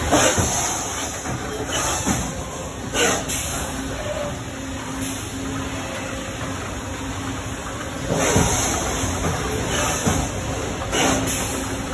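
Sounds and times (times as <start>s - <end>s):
continuous machinery hiss: 0.0s - 11.9s.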